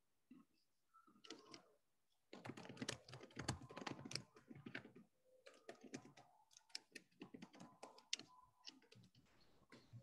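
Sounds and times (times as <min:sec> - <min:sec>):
typing on computer keyboard: 0:01.2 - 0:01.7, 0:02.3 - 0:09.2.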